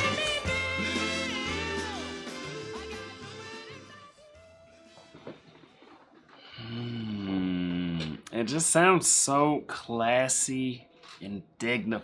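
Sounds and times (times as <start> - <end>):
man humming mmm: 6.4 - 8.3.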